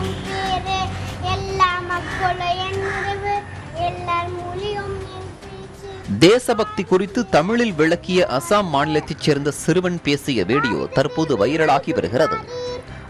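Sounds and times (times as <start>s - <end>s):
young boy's voice: 0.0s - 12.9s
background music with held melody: 0.0s - 13.0s.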